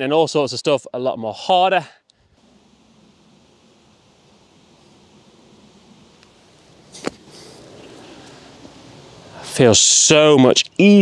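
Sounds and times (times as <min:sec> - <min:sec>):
faint hiss: 0:00.1 - 0:11.0
golf club hitting sand: 0:06.2 - 0:08.4.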